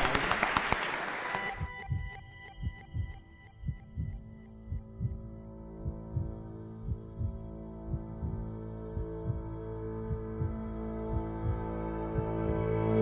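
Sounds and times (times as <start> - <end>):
audience applause: 0.0 - 1.7
ambient music with held tones: 1.0 - 13.0
low thumping pulse: 1.4 - 13.0.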